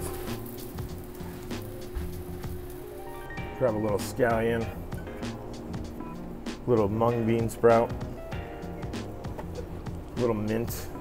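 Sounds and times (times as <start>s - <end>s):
fish sizzling on a griddle: 0.0s - 3.2s
background music: 0.0s - 11.0s.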